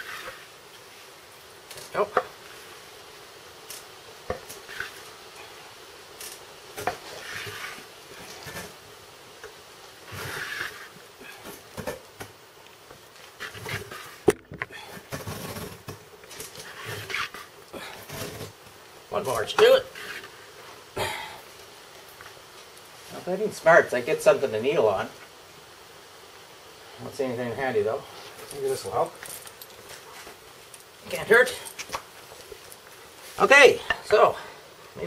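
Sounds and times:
wooden boards rubbing together: 0.0 - 0.5, 6.8 - 8.8, 10.1 - 11.0, 13.3 - 18.6, 19.5 - 20.4.

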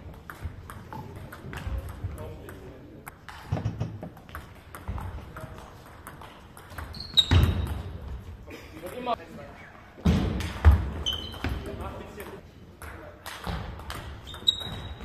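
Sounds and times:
short high squeaks: 6.9 - 7.8, 11.0 - 11.5, 14.3 - 15.0.

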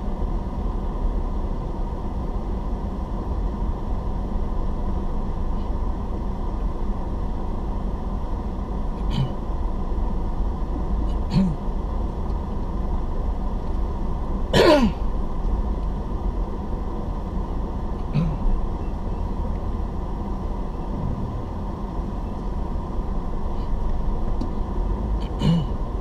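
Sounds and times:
car engine and road rumble: 0.0 - 26.0
person clearing throat: 9.1 - 9.4, 11.3 - 11.6, 14.6 - 15.0, 18.1 - 18.4, 25.3 - 25.8.

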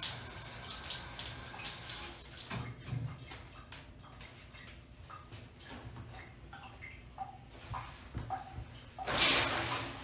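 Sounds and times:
shower water spattering: 0.0 - 2.6, 9.0 - 10.0.

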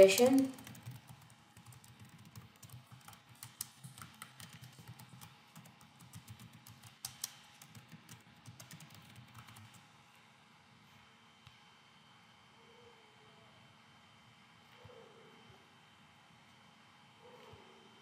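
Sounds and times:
typing on computer keyboard: 0.0 - 9.8.

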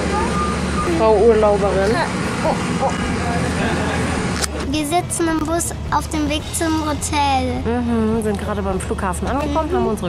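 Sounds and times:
faint voices: 0.0 - 6.0
bus engine drone: 0.0 - 10.0.

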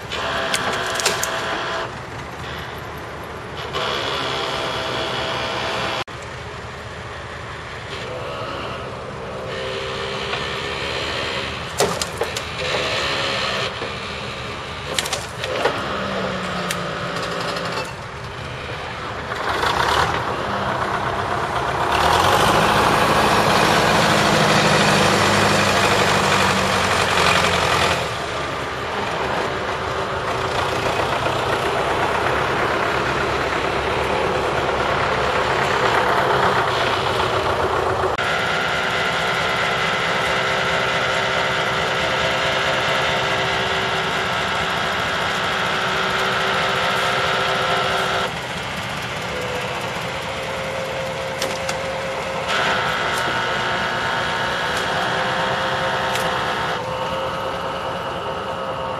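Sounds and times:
truck engine running under load: 0.0 - 58.9.

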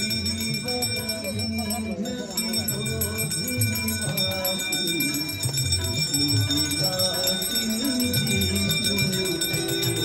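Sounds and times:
devotional music: 0.0 - 10.0
hand bells ringing rapidly: 0.0 - 10.0.

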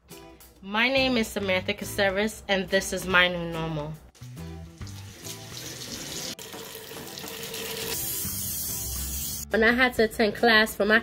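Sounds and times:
soft background music: 0.0 - 11.0
faucet water running into sink: 4.6 - 9.4.

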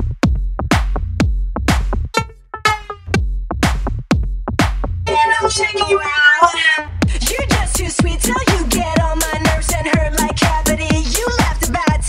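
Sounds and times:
kick drum beat: 0.0 - 5.0, 7.0 - 12.0
wavering pitched sample: 2.2 - 3.2.

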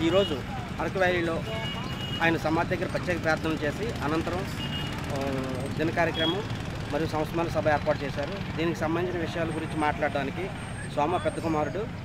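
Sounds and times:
man speaking: 0.0 - 4.5, 5.1 - 12.0.

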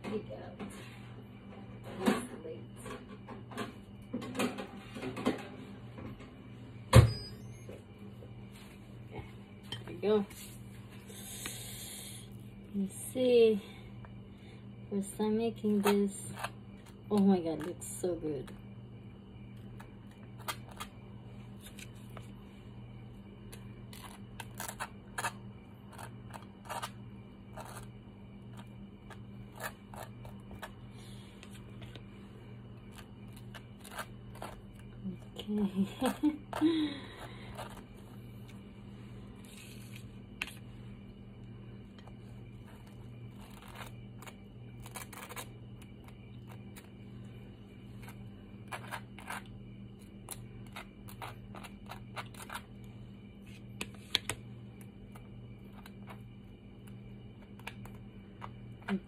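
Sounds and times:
faint low hum: 0.0 - 59.0
spoon scraping toast: 48.0 - 49.5.

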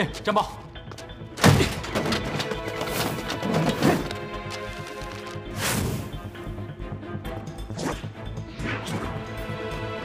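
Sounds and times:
dramatic score with pulsing beat: 0.0 - 10.0.

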